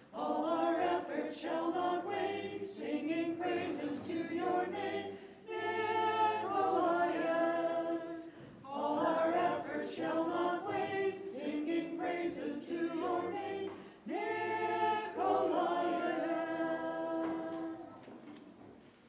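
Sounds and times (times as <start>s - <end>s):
group singing a hymn unaccompanied: 0.0s - 18.3s.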